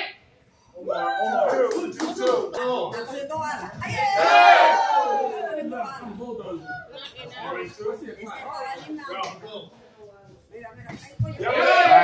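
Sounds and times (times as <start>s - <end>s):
loud drawn-out yell: 4.0s - 5.5s
voices shouting together: 4.0s - 5.6s, 11.4s - 12.0s.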